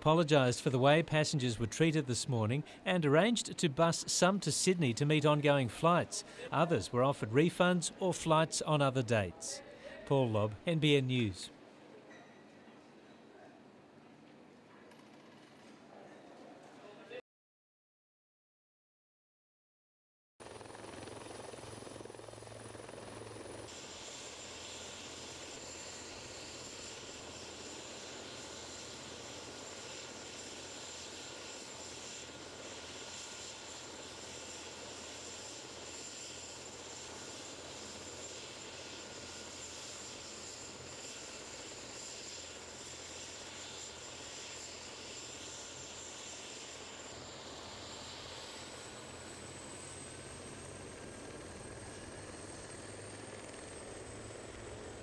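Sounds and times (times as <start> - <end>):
helicopter engine and rotor: 5.2 - 8.5, 20.4 - 55.0
high-pitched turbine whine: 20.6 - 55.0.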